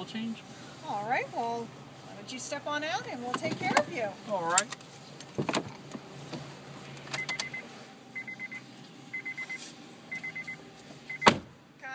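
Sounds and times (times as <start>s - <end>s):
door-open warning beeps: 7.1s - 11.4s
car door latch click: 11.2s - 11.5s.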